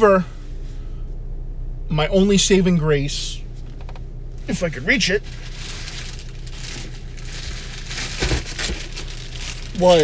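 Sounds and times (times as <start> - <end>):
steady low hum: 0.0 - 10.0
packaging rustling and crinkling: 5.2 - 10.0.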